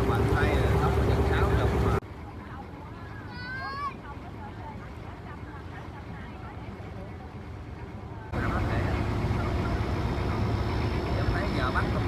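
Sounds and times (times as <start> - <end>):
boat engine rumbling: 0.0 - 12.0
faint voices chattering: 1.2 - 12.0.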